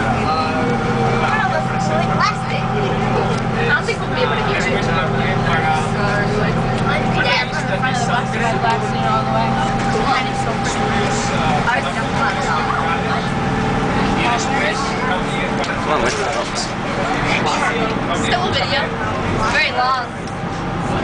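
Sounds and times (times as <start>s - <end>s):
bus engine hum from inside: 0.0s - 21.0s
passengers chattering: 0.0s - 21.0s.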